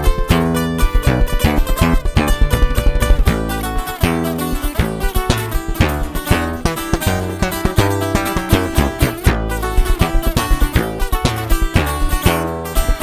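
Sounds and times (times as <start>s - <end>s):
acoustic bass guitar line: 0.0s - 13.0s
acoustic guitars picking runs: 0.0s - 13.0s.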